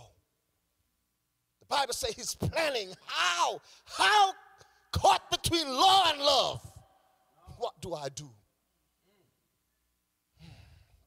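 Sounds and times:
faint sigh: 10.4s - 11.0s.

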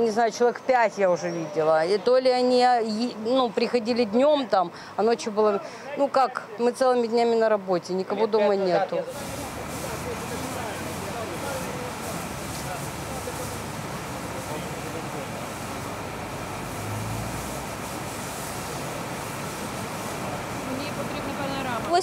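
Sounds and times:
fire hose spraying water: 8.9s - 22.0s.

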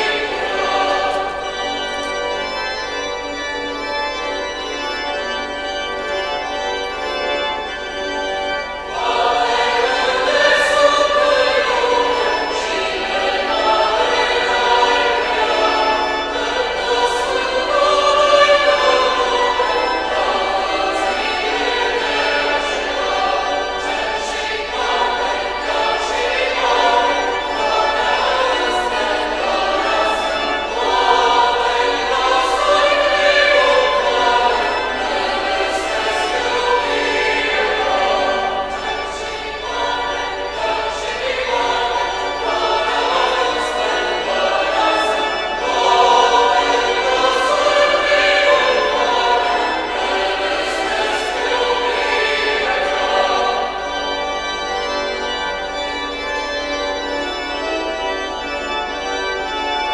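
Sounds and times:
choir singing sacred music: 0.0s - 59.9s.

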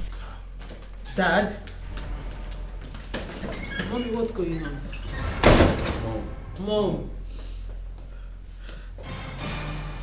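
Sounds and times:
steady low hum: 0.0s - 3.6s, 4.3s - 9.1s
person speaking: 6.0s - 7.3s.

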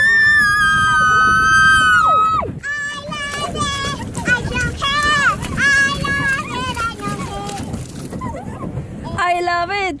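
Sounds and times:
children squealing: 0.0s - 2.5s.

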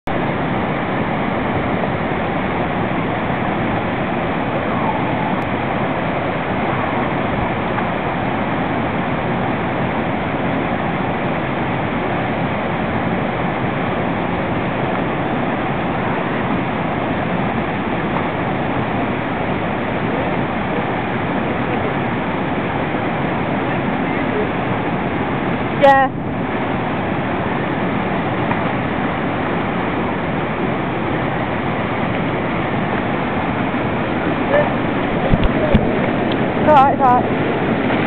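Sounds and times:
waterfall pouring over rocks: 29.4s - 38.0s.

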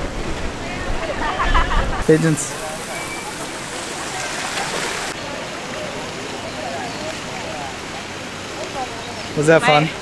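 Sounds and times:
people chattering: 0.5s - 10.0s
fountain water falling: 2.0s - 10.0s.

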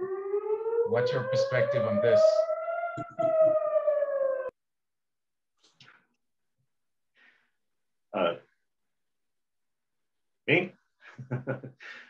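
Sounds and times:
slowly falling howl: 0.0s - 4.5s.

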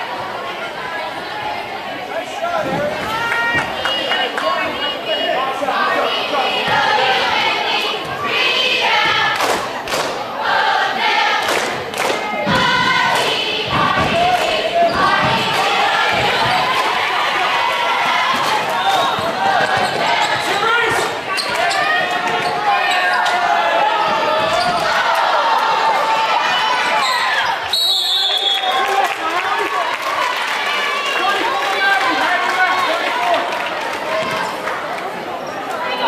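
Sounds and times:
crowd and cheerleader voices: 0.0s - 36.0s.

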